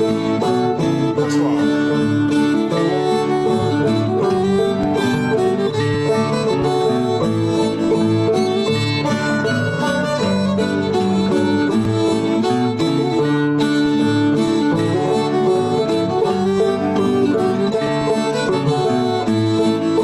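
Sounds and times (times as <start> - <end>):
fiddle and guitar playing: 0.0 - 20.0.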